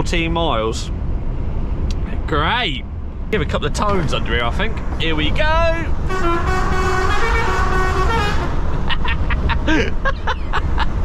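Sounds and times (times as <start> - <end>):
road noise in cab: 0.0 - 11.0
truck engine drone: 0.0 - 11.0.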